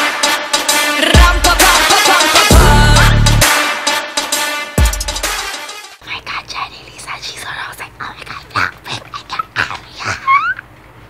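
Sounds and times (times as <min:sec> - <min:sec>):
woman whispering: 0:06.0 - 0:10.4.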